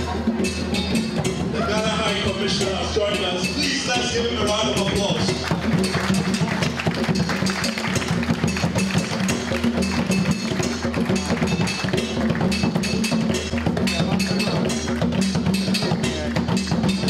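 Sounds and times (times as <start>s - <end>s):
hand drums played fast: 0.0s - 17.0s.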